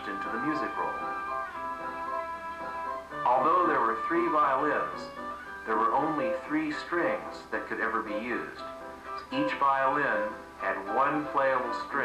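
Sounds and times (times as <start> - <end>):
mechanical violins sustained notes: 0.0 - 12.0.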